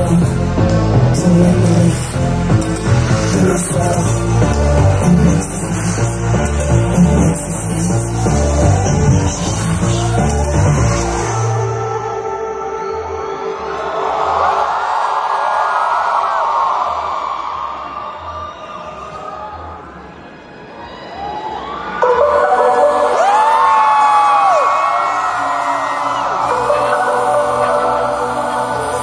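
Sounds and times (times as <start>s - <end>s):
live concert music: 0.0s - 14.9s, 21.3s - 29.0s
crowd cheering and screaming: 7.4s - 29.0s.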